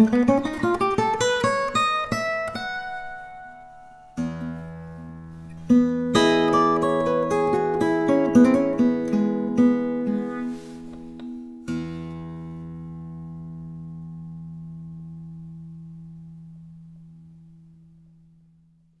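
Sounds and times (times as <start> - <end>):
acoustic guitar fingerstyle: 0.0 - 18.8.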